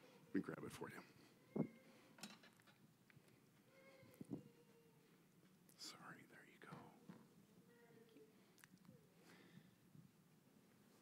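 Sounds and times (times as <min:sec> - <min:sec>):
faint whispered voices: 0:05.8 - 0:07.0.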